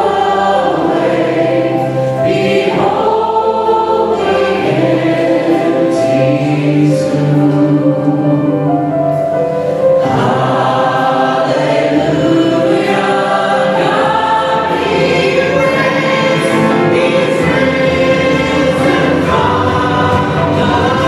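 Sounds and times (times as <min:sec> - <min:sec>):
band with piano drums guitars: 0:00.0 - 0:21.0
choir singing worship song: 0:00.0 - 0:21.0.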